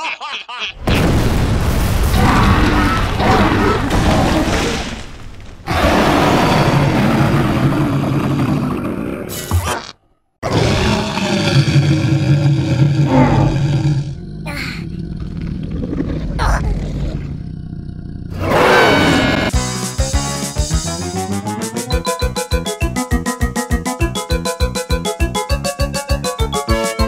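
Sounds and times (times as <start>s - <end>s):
cartoon monster roars and growls: 2.0s - 4.8s, 5.7s - 19.6s
light keyboard music: 19.6s - 27.0s.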